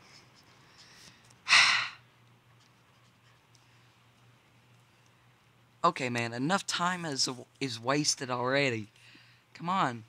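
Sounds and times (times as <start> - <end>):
person sighing: 1.5 - 2.0.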